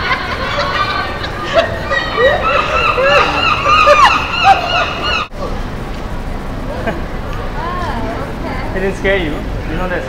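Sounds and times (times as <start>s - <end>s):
woman laughing: 0.0s - 5.2s
murmur of street noise: 0.0s - 10.0s.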